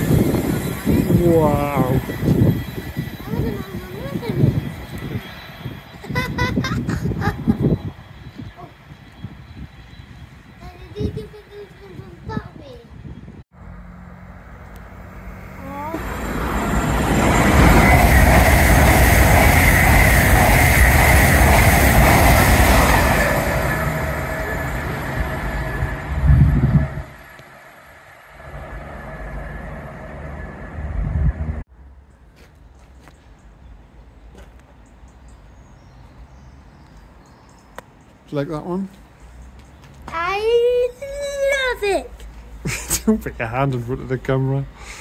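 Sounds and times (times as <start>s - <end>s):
faint outdoor background: 0.0s - 17.9s, 22.6s - 45.0s
diesel freight train passing: 0.0s - 31.6s, 33.5s - 42.6s
express train passing: 0.0s - 31.6s, 33.5s - 45.0s.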